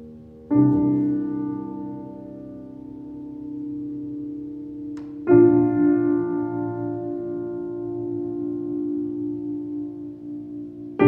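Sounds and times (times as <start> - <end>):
piano chord ringing: 0.0 - 11.0.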